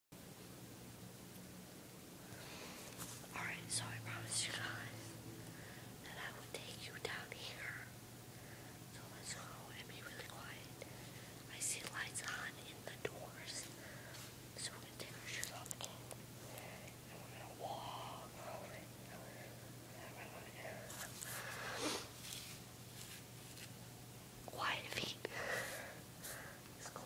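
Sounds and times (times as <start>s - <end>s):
steady low hum: 0.2s - 27.0s
woman whispering: 3.3s - 5.2s, 6.0s - 7.9s, 8.9s - 10.9s, 11.5s - 13.9s, 14.6s - 21.2s, 24.5s - 25.9s, 26.8s - 27.0s.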